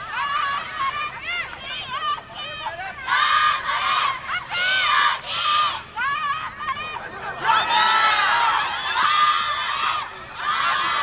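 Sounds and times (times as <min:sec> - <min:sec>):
girls shouting and yelling: 0:00.0 - 0:11.0.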